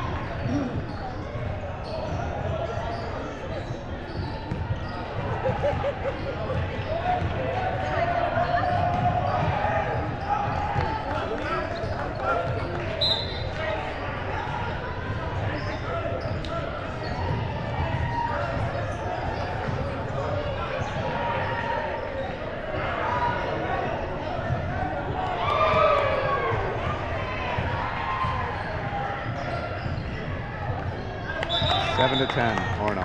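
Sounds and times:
voices of players and spectators: 0:00.0 - 0:33.0.

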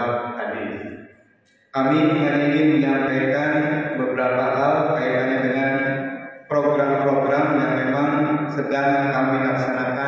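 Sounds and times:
man's voice through loudspeakers: 0:00.0 - 0:10.0.

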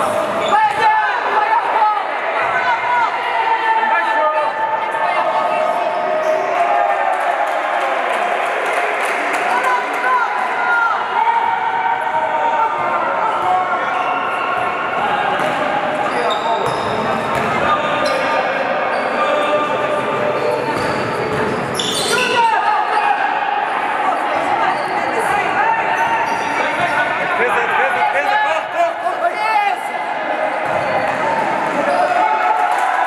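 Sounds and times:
basketball bouncing: 0:16.6 - 0:17.6.

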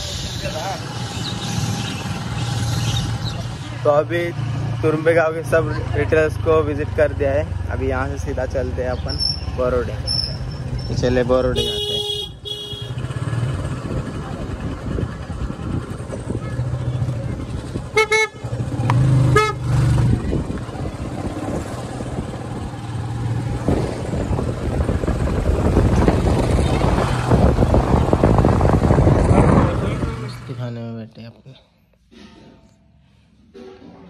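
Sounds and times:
horn toots: 0:11.5 - 0:13.2, 0:17.9 - 0:19.7
motorcycle engine running: 0:11.6 - 0:30.5
wind on microphone: 0:23.4 - 0:30.1.

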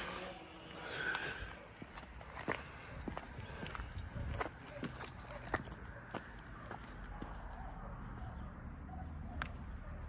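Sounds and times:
footsteps on tarmac: 0:00.6 - 0:10.0.

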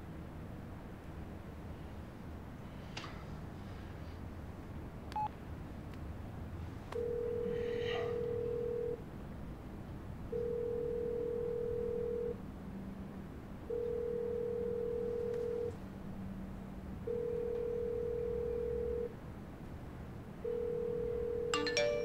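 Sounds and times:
telephone ringback tone: 0:07.0 - 0:09.0, 0:10.3 - 0:12.4, 0:13.7 - 0:15.7, 0:17.1 - 0:19.1, 0:20.4 - 0:22.0.

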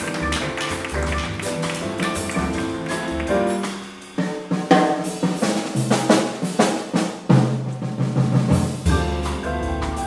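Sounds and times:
grand piano chords: 0:00.0 - 0:04.4, 0:08.7 - 0:10.0
drum kit with cymbals: 0:00.0 - 0:10.0
plucked double bass: 0:08.7 - 0:10.0.

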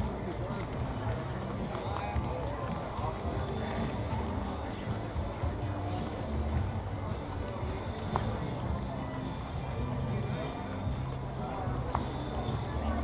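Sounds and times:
street crowd chatter: 0:00.0 - 0:13.0.

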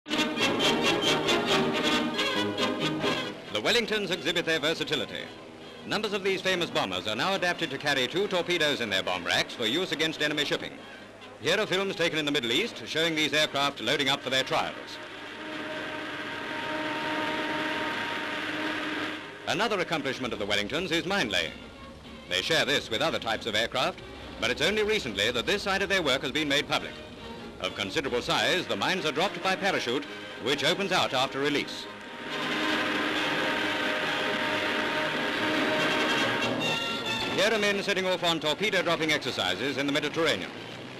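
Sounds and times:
aircraft engines droning: 0:00.1 - 0:40.9.

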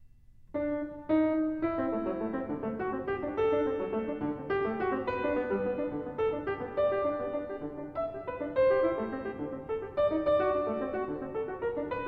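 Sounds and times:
grand piano waltz: 0:00.5 - 0:12.0.

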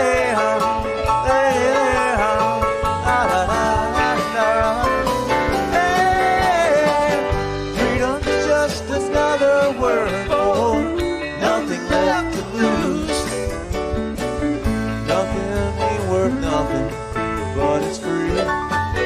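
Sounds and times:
bass: 0:00.0 - 0:19.0
drums: 0:00.0 - 0:19.0
electric guitar lead: 0:00.0 - 0:19.0
keyboard: 0:00.0 - 0:19.0.

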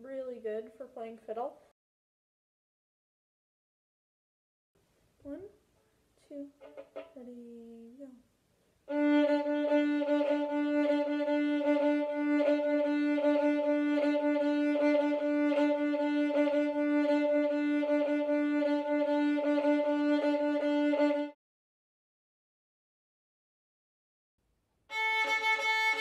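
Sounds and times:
solo fiddle shuffle bowing: 0:06.5 - 0:07.3, 0:08.9 - 0:21.4, 0:24.9 - 0:26.0.

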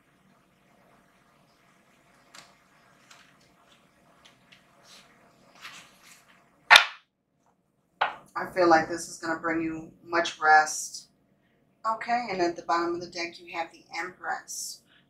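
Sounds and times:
card slapped on table: 0:06.7 - 0:07.0.

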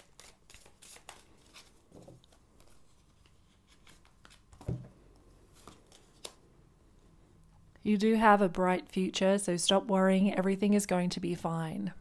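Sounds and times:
handling deck of cards: 0:00.0 - 0:06.4.

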